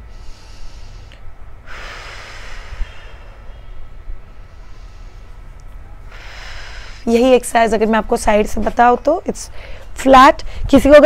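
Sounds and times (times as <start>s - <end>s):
woman breathing out: 0.0s - 5.4s, 6.1s - 7.1s
low steady rumble: 0.0s - 11.0s.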